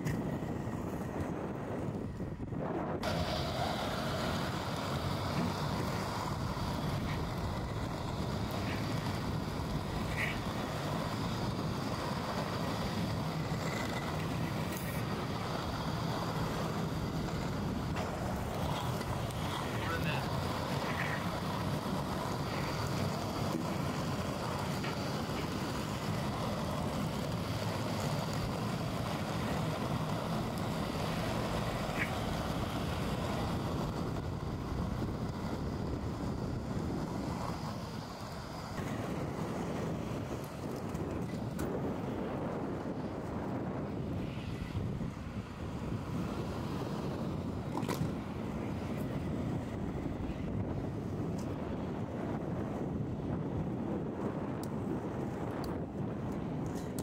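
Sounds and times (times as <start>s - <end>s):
skate wheels rolling on asphalt: 0.0s - 57.0s
wind buffeting microphone: 0.0s - 57.0s.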